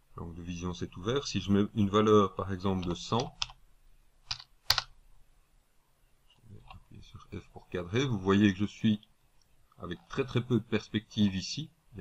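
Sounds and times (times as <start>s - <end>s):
computer keyboard keystrokes: 4.3s - 4.9s.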